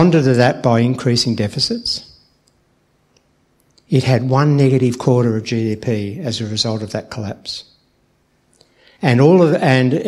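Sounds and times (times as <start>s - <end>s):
man talking amplified: 0.0s - 2.2s, 3.9s - 7.7s, 9.0s - 10.0s
faint small clicks: 2.4s - 3.9s.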